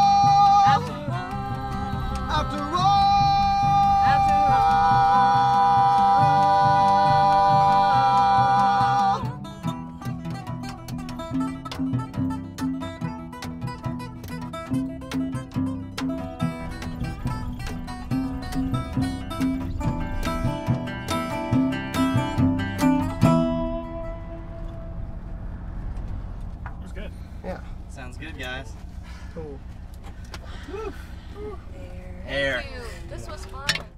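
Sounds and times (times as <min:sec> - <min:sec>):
low rumble: 0:00.0 - 0:13.3, 0:13.9 - 0:33.9
acoustic guitar picking: 0:00.0 - 0:33.9
resonator guitar picking: 0:00.0 - 0:33.9.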